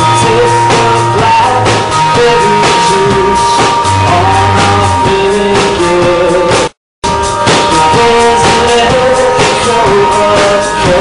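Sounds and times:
bass guitar: 0.0s - 11.0s
drum kit hits: 0.0s - 11.0s
electric guitar: 0.0s - 11.0s.

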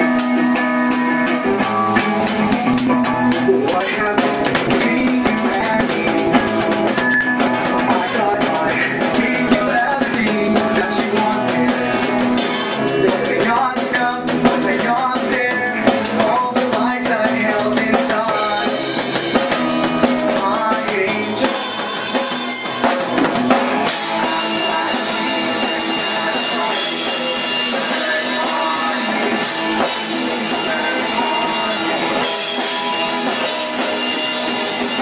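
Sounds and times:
drum kit: 0.0s - 35.0s
rock band playing live: 0.0s - 35.0s.

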